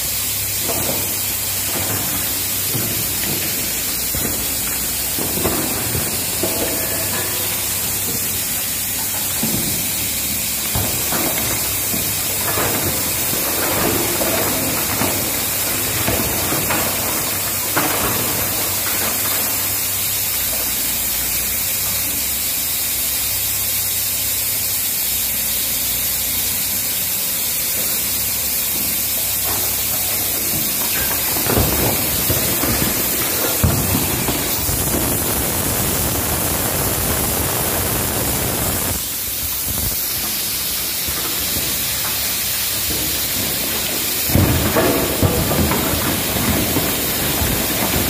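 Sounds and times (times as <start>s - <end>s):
truck engine rumble: 0.0s - 48.0s
water sprays hissing: 0.0s - 48.0s
rocks knocking and thudding: 29.5s - 48.0s.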